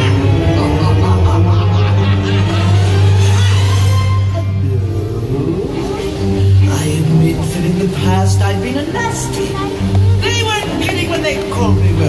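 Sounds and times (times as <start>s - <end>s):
low musical tones over loudspeakers: 0.0s - 12.0s
voice over music: 0.0s - 12.0s.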